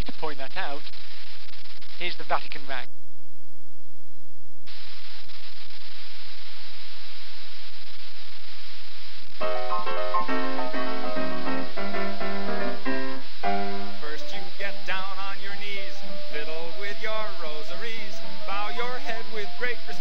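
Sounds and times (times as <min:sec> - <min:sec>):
steady hiss: 0:00.0 - 0:02.9, 0:04.6 - 0:20.0
grand piano rag-style chords: 0:09.4 - 0:16.3.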